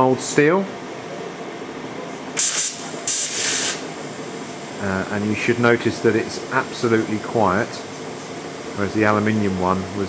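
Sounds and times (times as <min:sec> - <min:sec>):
welding torch hissing: 0:02.4 - 0:07.1.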